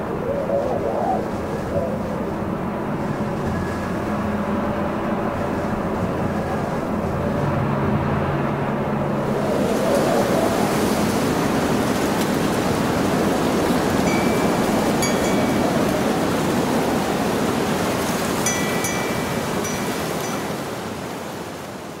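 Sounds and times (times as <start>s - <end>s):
steady rushing noise: 0.0s - 22.0s.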